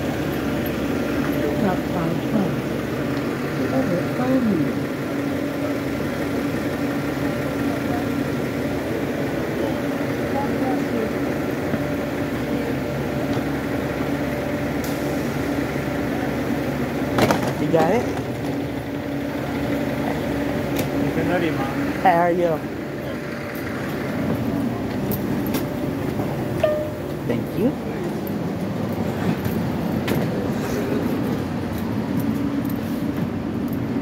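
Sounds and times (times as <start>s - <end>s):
bus engine idling: 0.0s - 34.0s.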